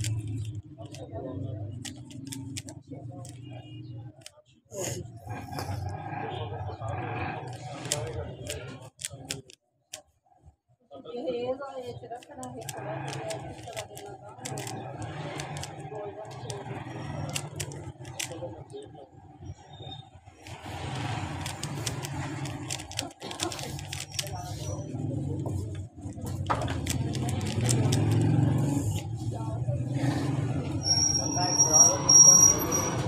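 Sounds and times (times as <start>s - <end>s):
puzzle cube clicking: 0.0s - 1.1s, 1.7s - 3.5s, 7.4s - 10.1s, 12.2s - 18.8s, 20.4s - 29.0s
indistinct voices: 0.0s - 9.6s, 11.8s - 33.0s.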